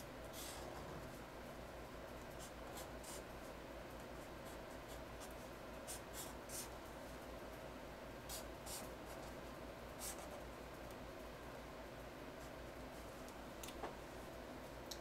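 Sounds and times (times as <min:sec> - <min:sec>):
low room hum: 0:00.0 - 0:15.0
marker scratching on paper: 0:02.4 - 0:03.2, 0:04.4 - 0:06.7, 0:08.3 - 0:09.3, 0:10.0 - 0:10.4.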